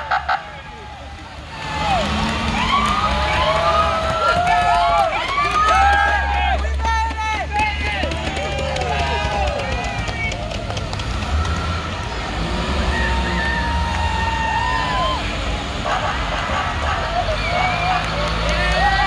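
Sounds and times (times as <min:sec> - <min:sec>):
bus engines rumbling: 0:00.0 - 0:19.0
young people cheering and whooping: 0:00.6 - 0:19.0.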